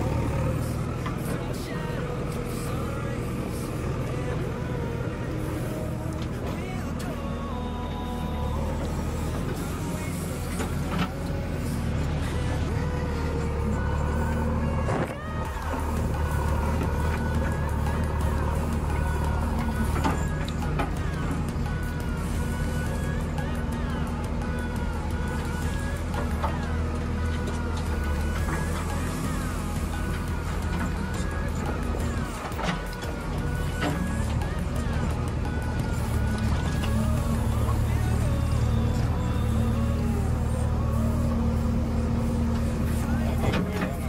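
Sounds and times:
background music: 0.0 - 44.0
diesel engine droning: 0.0 - 44.0.

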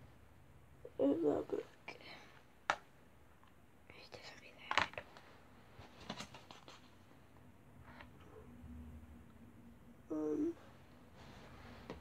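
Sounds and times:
person whispering: 0.9 - 2.3, 3.9 - 5.1, 10.1 - 10.6.

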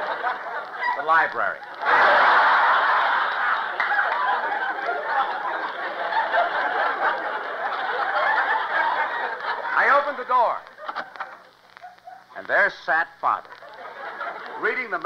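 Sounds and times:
radio dialogue: 0.0 - 2.2, 7.2 - 15.0
studio audience laughing: 0.0 - 12.4, 13.4 - 15.0.

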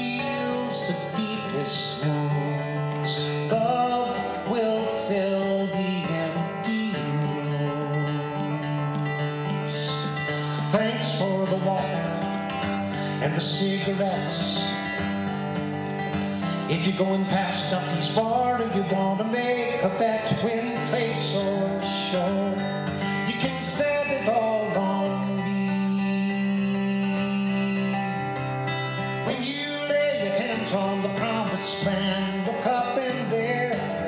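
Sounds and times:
acoustic guitar folk song: 0.0 - 34.0.

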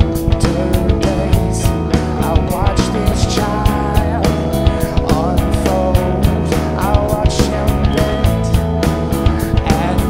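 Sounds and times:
bass guitar: 0.0 - 10.0
distorted electric guitar: 0.0 - 10.0
drum kit hits: 0.0 - 10.0.

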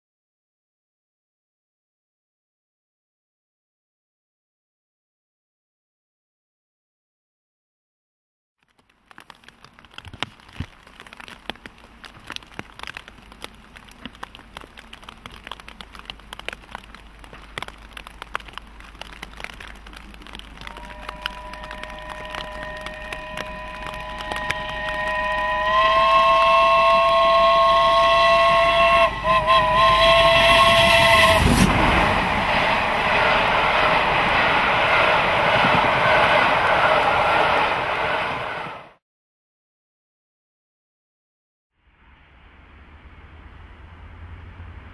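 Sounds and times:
rain pattering on plastic bag: 8.6 - 34.4
train coaches rolling by: 14.3 - 39.0
steam locomotive passing: 20.1 - 39.0, 42.1 - 44.9.

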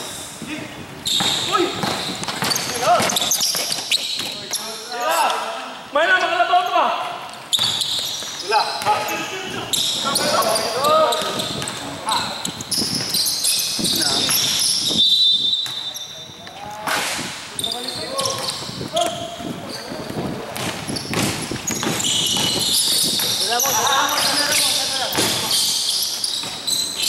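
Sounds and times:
basketball bouncing on floor: 1.2 - 4.4, 7.6 - 9.1, 20.1 - 25.5.

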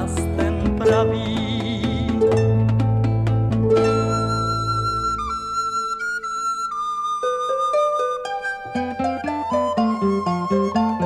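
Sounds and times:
plucked accompaniment: 0.0 - 11.0
sustained strings: 0.0 - 11.0
flute long high notes: 3.8 - 11.0.

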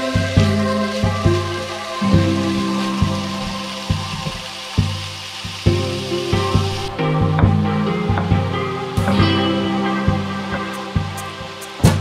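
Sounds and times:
instrumental background music: 0.0 - 12.0
struck pitched notes: 0.0 - 12.0.

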